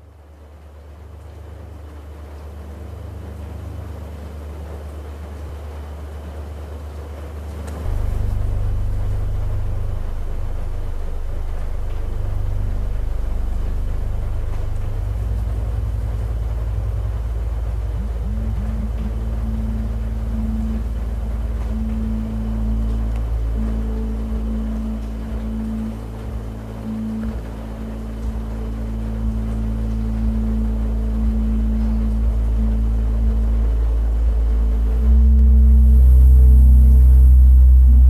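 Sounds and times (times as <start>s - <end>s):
deep sustained drone tones: 1.0s - 38.0s
higher tone: 7.6s - 38.0s.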